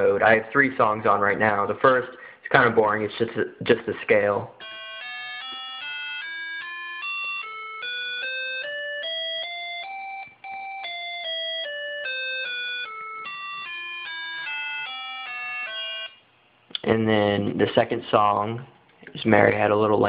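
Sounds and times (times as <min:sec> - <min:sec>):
buzzy electronic beeps playing scale: 0:04.6 - 0:16.2.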